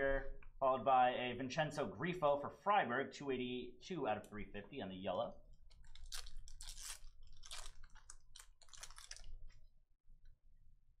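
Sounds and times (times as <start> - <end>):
plastic wrapper crinkling: 5.5 - 9.7.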